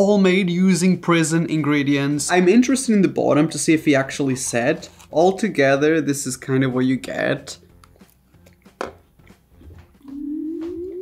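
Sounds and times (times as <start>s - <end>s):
man chewing food: 7.7s - 11.0s.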